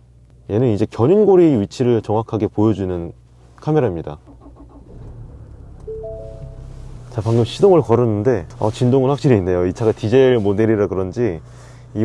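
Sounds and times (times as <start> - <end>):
diesel engine starting and idling: 4.1 - 9.4
steady tone: 5.7 - 7.2.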